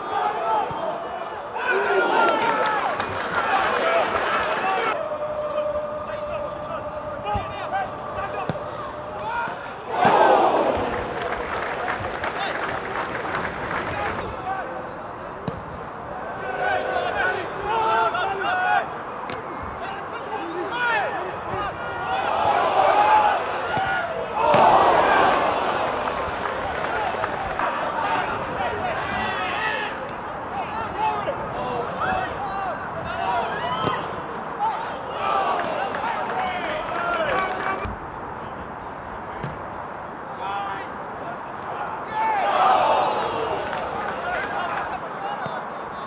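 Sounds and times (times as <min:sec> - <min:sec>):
men shouting and calling: 0:00.0 - 0:11.3, 0:16.2 - 0:19.1, 0:19.7 - 0:37.8, 0:41.6 - 0:45.8.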